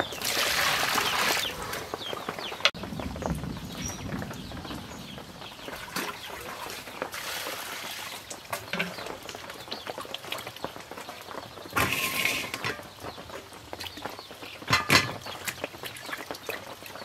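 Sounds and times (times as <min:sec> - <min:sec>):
water splashing in a bowl: 0:00.0 - 0:02.0, 0:05.7 - 0:17.0.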